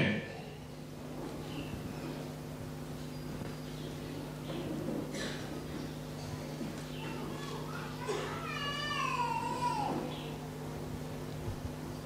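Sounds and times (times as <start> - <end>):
high-pitched cry: 7.4 - 10.0.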